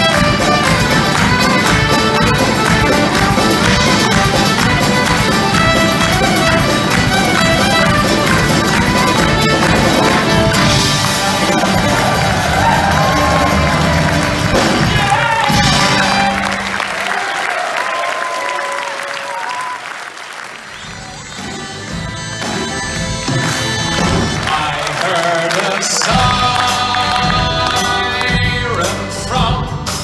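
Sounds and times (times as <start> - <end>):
accordion: 0.0 - 12.3, 20.8 - 24.8
fiddle: 0.0 - 14.7
electric bass: 0.0 - 16.5
drums: 0.0 - 18.3, 19.2 - 30.0.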